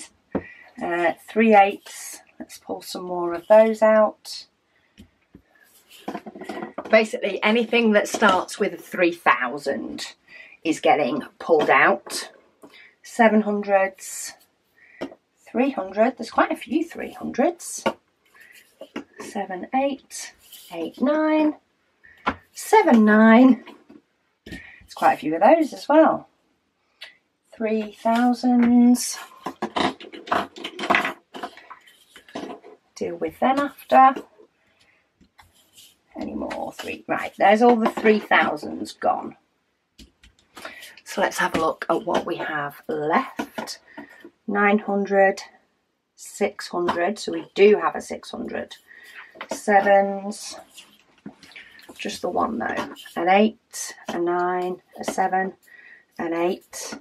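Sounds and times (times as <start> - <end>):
plastic bottles clattering: 29.3 - 32.7.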